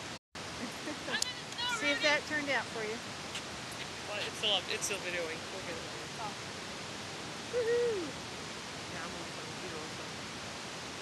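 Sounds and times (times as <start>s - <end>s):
steady hiss: 0.0s - 11.0s
hoot-like vocal call: 7.5s - 8.2s.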